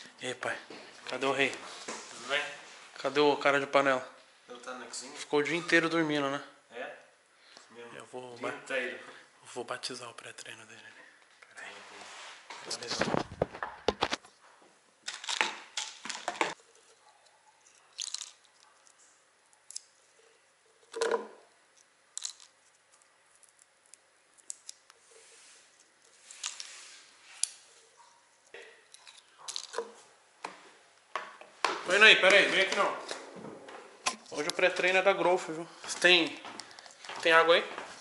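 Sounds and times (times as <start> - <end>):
plastic tubs and bottle handling: 15.0 - 19.0, 20.8 - 21.5, 24.9 - 38.0.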